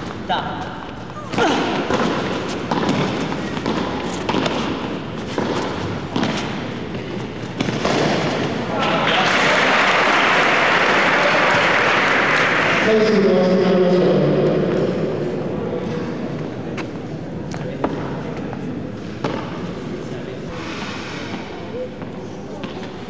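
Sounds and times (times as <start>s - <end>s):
rackets hitting ball: 1.3s - 8.8s, 19.0s - 19.7s
crowd applauding: 8.7s - 12.9s.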